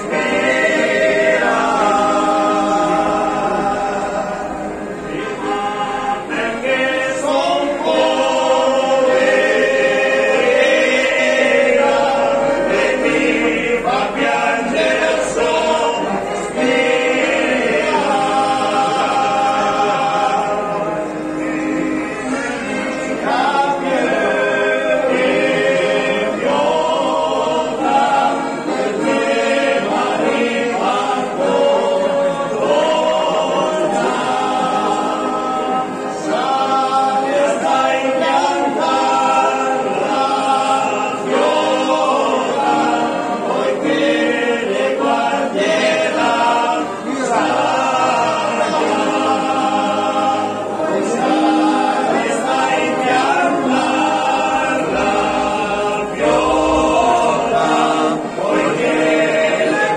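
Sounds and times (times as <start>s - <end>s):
men singing in harmony: 0.0s - 59.9s.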